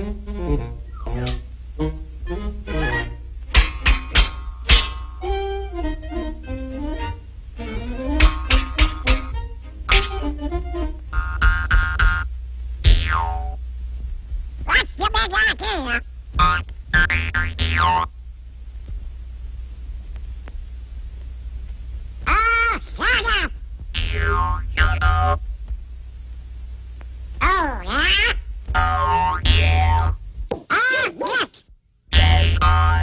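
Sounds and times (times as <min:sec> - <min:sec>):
orchestral music: 0:00.0 - 0:03.2, 0:05.2 - 0:11.1
cartoon music: 0:00.9 - 0:03.2, 0:07.9 - 0:12.2, 0:27.4 - 0:30.2, 0:32.1 - 0:33.0
wobbling pitched sounds: 0:11.1 - 0:13.6, 0:14.6 - 0:18.1, 0:22.3 - 0:25.4, 0:27.4 - 0:30.2, 0:32.1 - 0:33.0
cartoon boing falling in pitch: 0:11.2 - 0:12.3, 0:12.9 - 0:13.6, 0:16.4 - 0:18.1, 0:24.0 - 0:25.4, 0:28.0 - 0:30.2, 0:32.1 - 0:33.0
squawking quacking cartoon voice: 0:14.7 - 0:16.5, 0:22.3 - 0:25.0, 0:27.4 - 0:29.5, 0:30.7 - 0:31.6.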